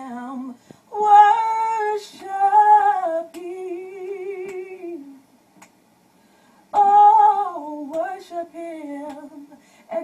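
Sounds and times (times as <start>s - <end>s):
woman singing: 0.0s - 5.2s, 6.7s - 10.0s.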